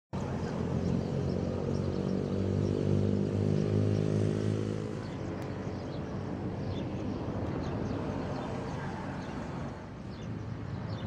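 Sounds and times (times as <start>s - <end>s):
vehicle engine passing: 0.2s - 10.0s.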